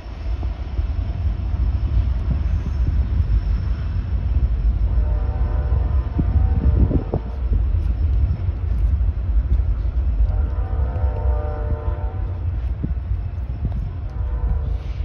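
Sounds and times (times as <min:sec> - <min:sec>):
freight train rumbling: 0:00.0 - 0:15.0
train horn chords: 0:04.9 - 0:07.4, 0:10.2 - 0:12.8, 0:14.0 - 0:15.0.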